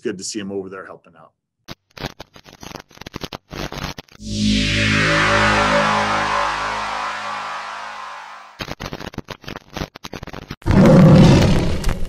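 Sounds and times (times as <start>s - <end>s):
glitchy static crackle: 1.7s - 10.6s
electronic music: 4.2s - 8.6s.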